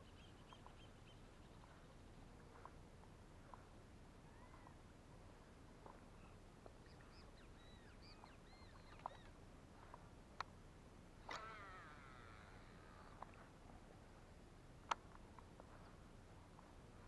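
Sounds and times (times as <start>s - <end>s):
faint high bird chirps: 0.0s - 2.6s, 4.2s - 4.8s, 6.1s - 9.4s
sharp soft clicks: 8.1s - 10.6s, 14.8s - 15.9s
falling whirring sound: 11.3s - 13.0s.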